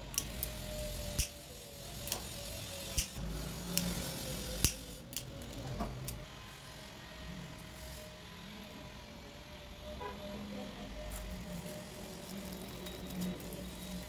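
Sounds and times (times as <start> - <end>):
lighter clicks: 1.2 - 1.4, 4.6 - 5.3.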